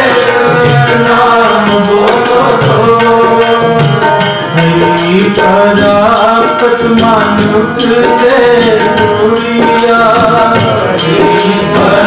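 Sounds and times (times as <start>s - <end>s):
tabla beat: 0.0s - 12.0s.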